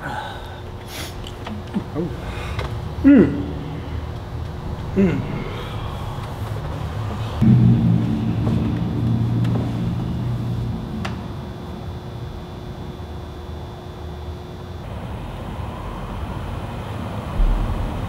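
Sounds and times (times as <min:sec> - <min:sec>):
low droning hum: 0:00.0 - 0:18.0.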